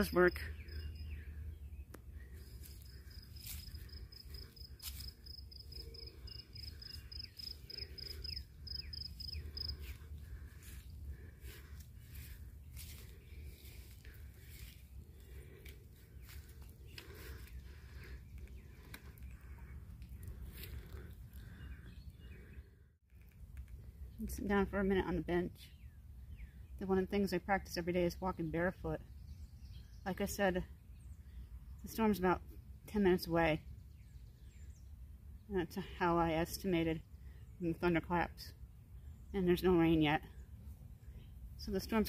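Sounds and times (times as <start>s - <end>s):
walking footsteps: 2.4s - 8.3s, 9.1s - 21.6s
cricket chirping: 2.8s - 9.8s.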